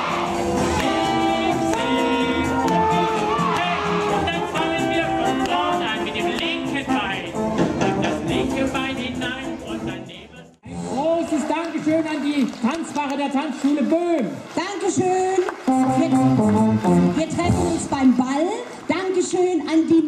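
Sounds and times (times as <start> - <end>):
jazz band playing: 0.0 - 9.6, 15.6 - 18.1
music with voices: 0.0 - 11.1, 15.2 - 19.0.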